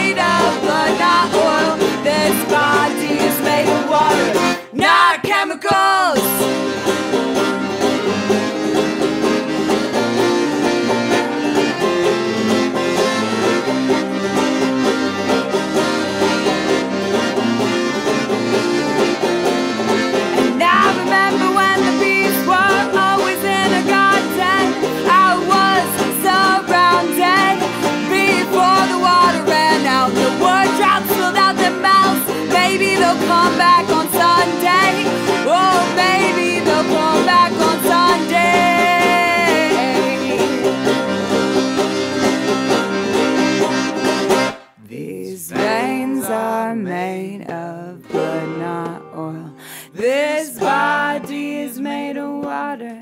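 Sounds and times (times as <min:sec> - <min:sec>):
piano accordion: 0:00.0 - 0:04.8, 0:06.2 - 0:44.8, 0:45.5 - 0:46.4
person singing: 0:00.0 - 0:06.6, 0:20.3 - 0:41.1, 0:44.8 - 0:53.0
banjo: 0:00.0 - 0:53.0.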